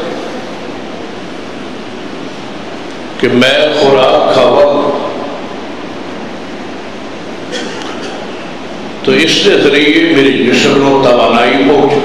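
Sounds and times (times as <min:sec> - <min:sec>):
sound system hiss: 0:00.0 - 0:12.0.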